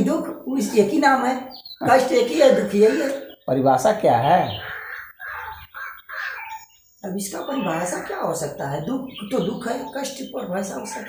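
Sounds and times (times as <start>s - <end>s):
short bird calls: 2.6s - 9.6s.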